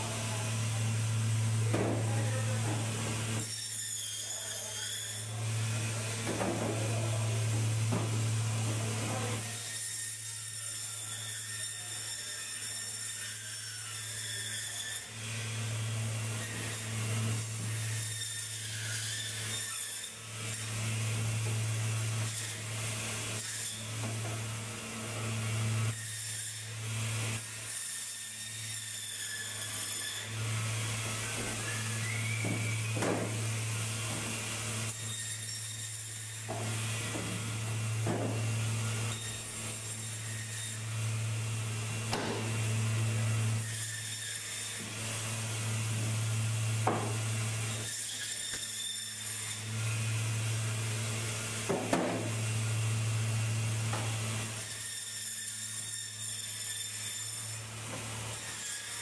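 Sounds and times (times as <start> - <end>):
band saw motor hum: 0.0 - 59.0
saw blade cutting fish: 0.0 - 59.0.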